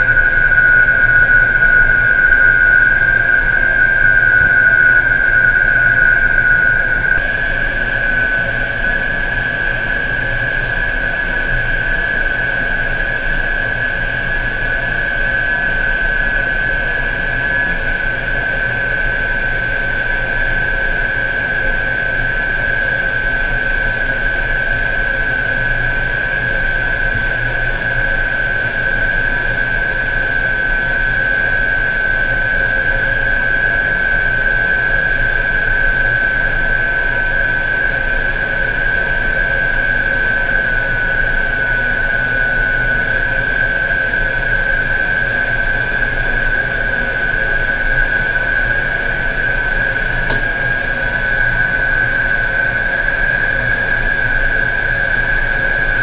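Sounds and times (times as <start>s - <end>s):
crane machinery drone: 0.0s - 56.0s
high-pitched machine whine: 0.0s - 56.0s.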